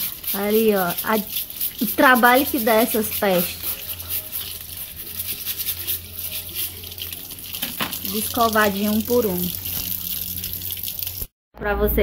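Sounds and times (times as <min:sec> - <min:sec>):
scrubbing and scraping crabs: 0:00.0 - 0:11.3
water splashing: 0:00.0 - 0:11.3.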